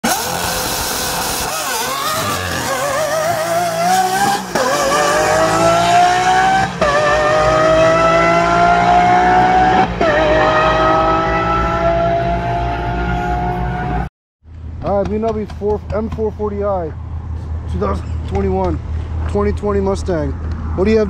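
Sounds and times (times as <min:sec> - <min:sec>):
car engine accelerating: 0:00.0 - 0:14.1.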